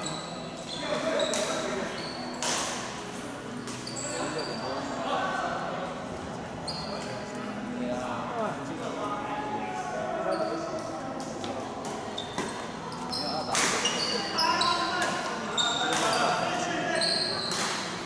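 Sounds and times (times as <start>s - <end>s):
shoes squeaking on court floor: 0.0s - 4.9s, 6.6s - 7.4s, 10.2s - 18.0s.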